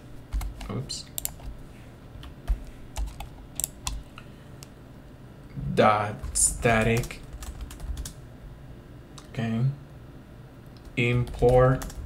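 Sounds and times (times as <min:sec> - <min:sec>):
computer keyboard typing: 0:00.3 - 0:01.6, 0:02.5 - 0:04.1, 0:06.2 - 0:08.2, 0:10.8 - 0:12.0.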